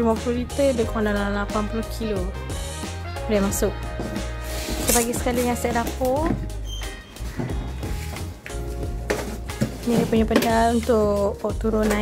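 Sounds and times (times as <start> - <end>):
background music with bass: 0.0 - 12.0.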